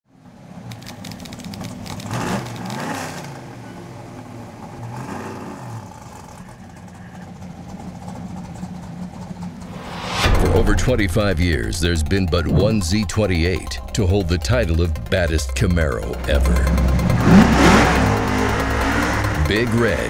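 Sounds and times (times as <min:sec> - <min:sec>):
car engine revving: 0:04.3 - 0:20.0.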